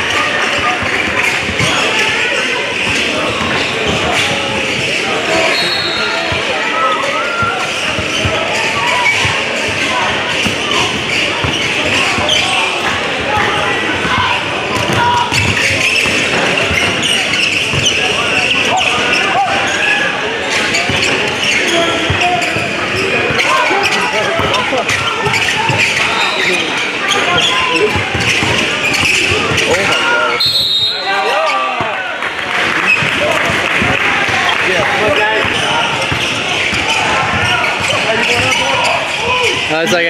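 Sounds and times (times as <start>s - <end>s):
background chatter: 0.0s - 40.0s.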